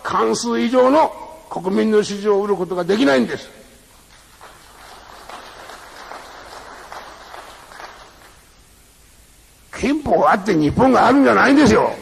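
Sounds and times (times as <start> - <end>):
recording hiss: 0.0 - 12.0
audience applauding: 4.0 - 8.5.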